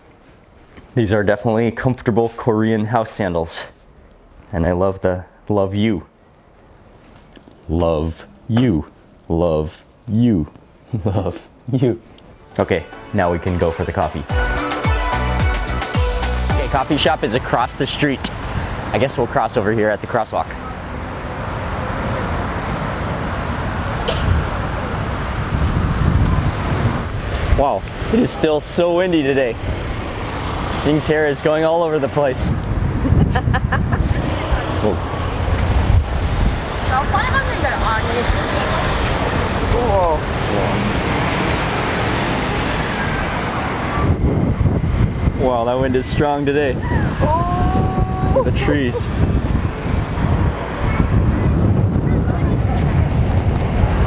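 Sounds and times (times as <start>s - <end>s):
road traffic: 3.2s - 54.0s
wind rumbling on microphone: 21.4s - 28.2s, 32.2s - 54.0s.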